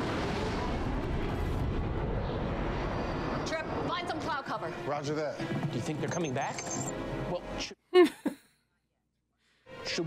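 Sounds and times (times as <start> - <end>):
jet engines roaring in flight: 0.0 - 4.4.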